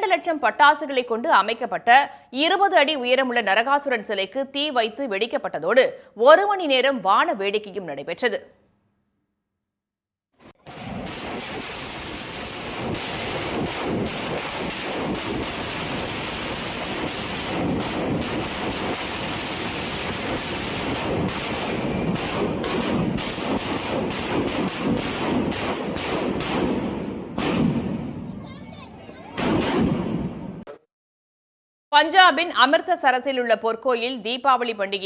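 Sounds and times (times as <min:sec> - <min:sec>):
firecrackers crackling: 0:10.4 - 0:30.3.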